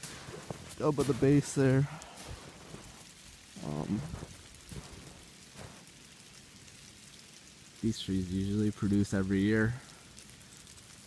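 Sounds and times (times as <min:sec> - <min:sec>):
footsteps crunching in snow: 0:00.0 - 0:06.0
steady hiss: 0:00.0 - 0:11.0.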